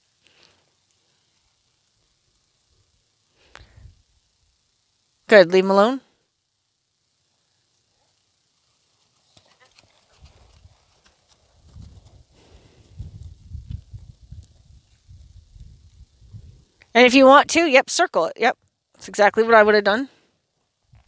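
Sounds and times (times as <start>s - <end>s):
hoofbeats on soft turf: 9.0s - 14.6s.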